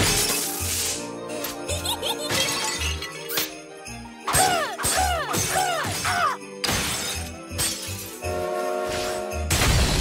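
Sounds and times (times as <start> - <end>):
upbeat background music: 0.0 - 8.1.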